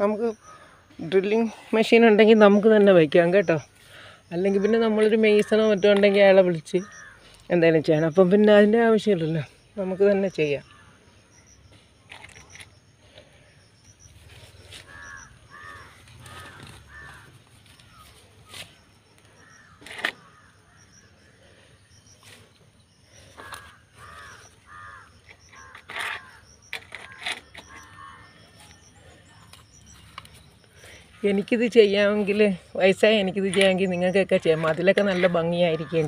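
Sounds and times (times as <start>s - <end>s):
bird calling: 0.0s - 36.0s.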